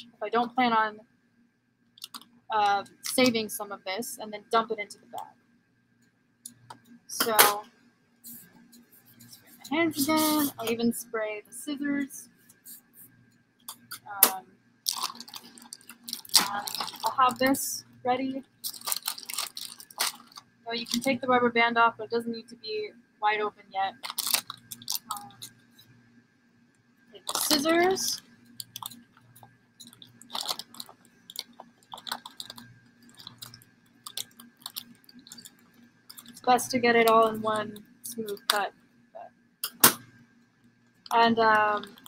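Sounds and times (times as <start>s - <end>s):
scissors snipping plastic bag: 14.9s - 17.5s, 18.6s - 21.2s, 23.9s - 25.5s, 27.2s - 29.0s
plastic bag crinkling: 14.9s - 17.6s, 18.4s - 21.2s, 23.9s - 25.6s, 27.2s - 38.6s, 41.0s - 42.0s.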